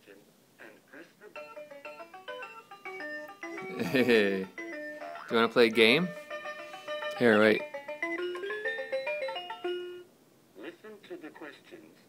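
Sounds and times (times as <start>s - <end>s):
electronic toy melody: 1.4s - 10.1s.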